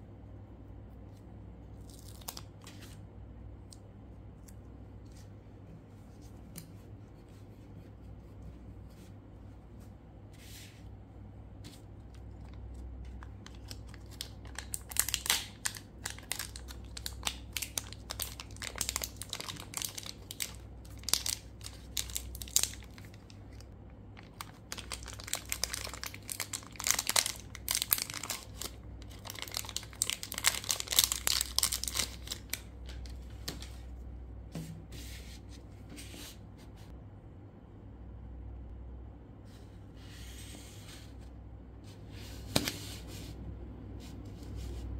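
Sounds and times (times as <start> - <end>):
plastic wrapper crinkling: 1.8 - 2.7, 12.2 - 33.6.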